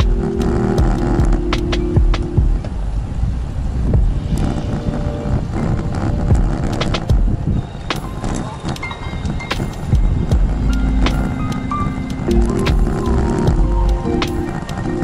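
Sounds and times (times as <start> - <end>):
road rumble: 0.0 - 15.0
wind buffeting microphone: 0.0 - 15.0.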